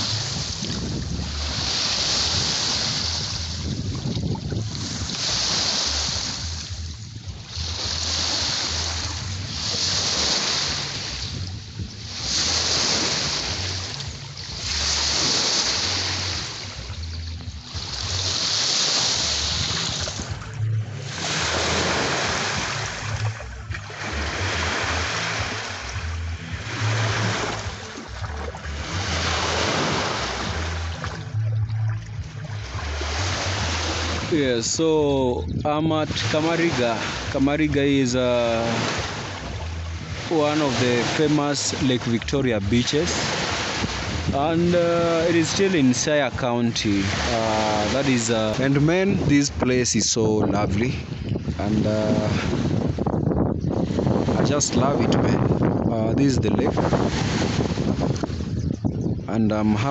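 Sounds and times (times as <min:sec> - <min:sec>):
wind buffeting microphone: 0:00.0 - 0:41.0, 0:42.2 - 0:59.9
lake waves washing on shore: 0:00.0 - 0:59.9.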